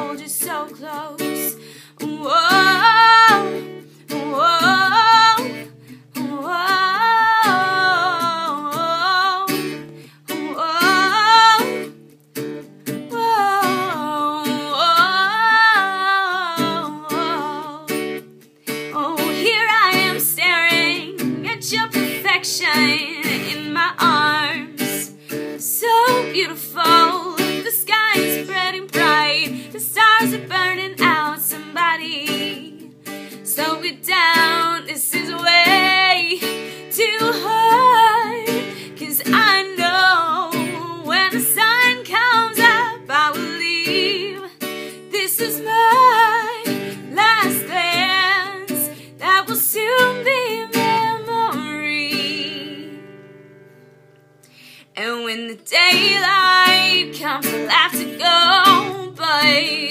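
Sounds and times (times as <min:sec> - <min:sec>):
woman singing: 0:00.0 - 0:12.0, 0:12.9 - 0:53.3, 0:54.9 - 0:59.9
acoustic guitar strumming: 0:00.0 - 0:59.9.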